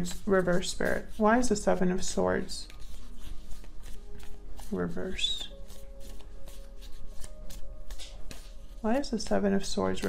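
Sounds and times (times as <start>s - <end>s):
faint background music: 0.0s - 10.0s
cards being shuffled: 2.6s - 10.0s.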